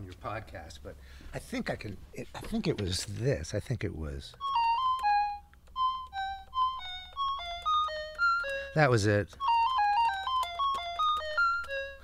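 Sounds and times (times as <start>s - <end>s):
mini keyboard melody: 4.3s - 12.0s.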